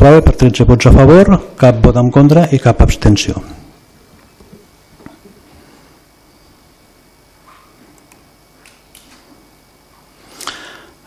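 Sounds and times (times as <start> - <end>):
faint small clicks: 8.0 - 9.2.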